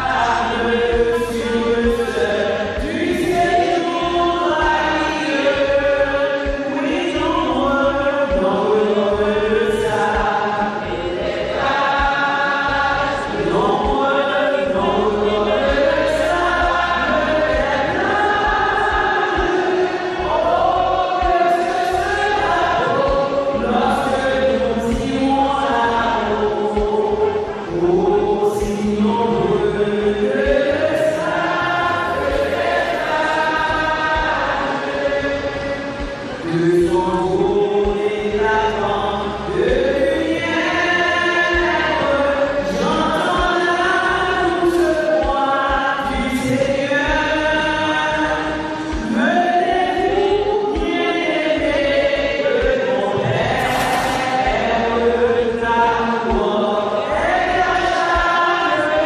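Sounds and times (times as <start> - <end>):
choir singing a hymn: 0.0 - 59.0.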